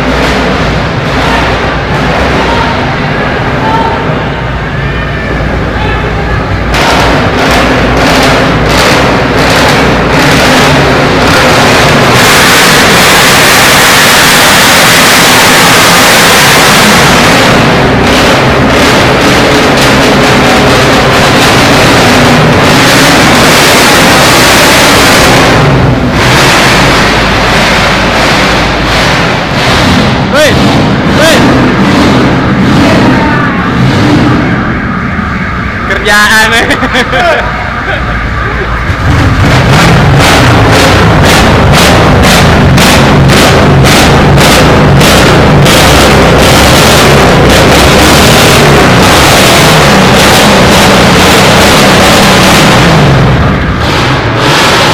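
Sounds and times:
loud car engine exhaust echoing: 0:00.0 - 0:54.9.

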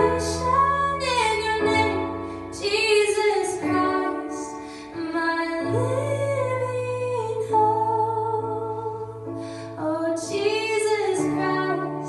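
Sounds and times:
piano chords: 0:00.0 - 0:12.0
woman singing: 0:00.0 - 0:12.0.

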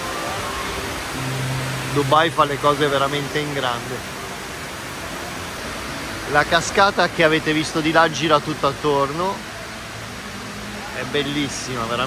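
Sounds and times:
faint music: 0:00.0 - 0:12.0
waterfall rushing into pool: 0:00.0 - 0:12.0.

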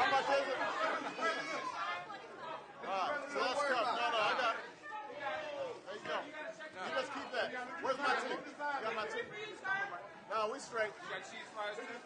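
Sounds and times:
men chattering: 0:00.0 - 0:02.0.

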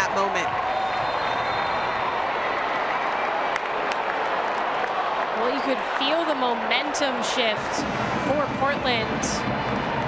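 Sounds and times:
stadium crowd cheering and applauding: 0:00.0 - 0:10.0.

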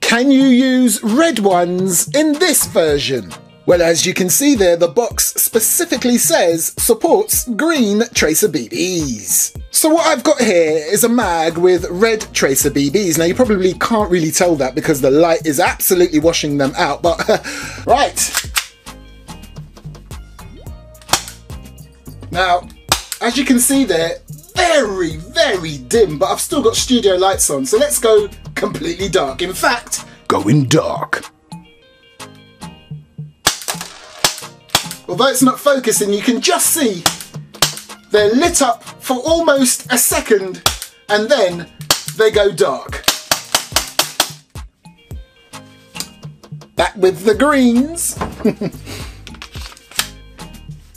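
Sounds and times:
background music: 0:00.0 - 0:50.9
airsoft pistol shots: 0:43.0 - 0:44.4.

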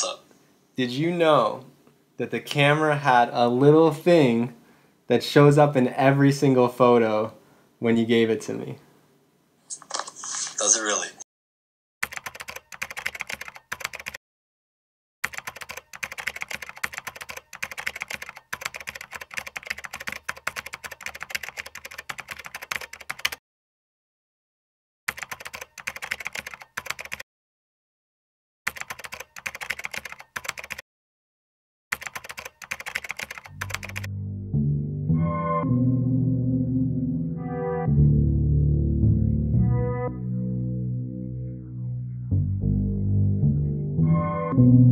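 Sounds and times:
keyboard typing: 0:12.0 - 0:14.2, 0:15.2 - 0:23.4, 0:25.1 - 0:27.2, 0:28.7 - 0:30.8, 0:31.9 - 0:34.1.

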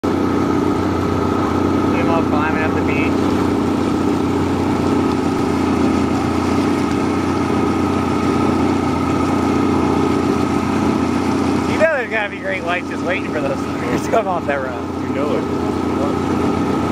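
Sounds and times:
boat engine droning: 0:00.0 - 0:16.9.

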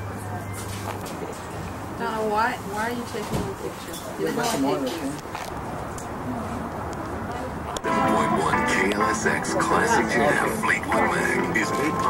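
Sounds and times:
music from car radio: 0:07.9 - 0:12.0
radio announcer speaking: 0:07.9 - 0:12.0.

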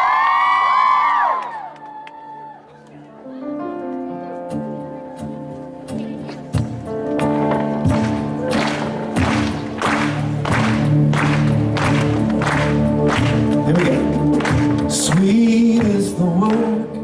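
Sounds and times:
person singing: 0:13.3 - 0:17.0.

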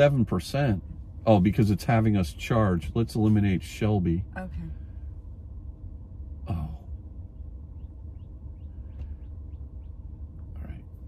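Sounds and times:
low steady cabin hum: 0:00.0 - 0:11.0.

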